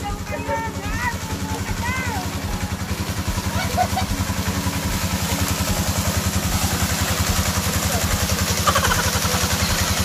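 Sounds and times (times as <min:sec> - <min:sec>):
small engine running: 0:00.0 - 0:10.0
voices calling out: 0:00.0 - 0:10.0.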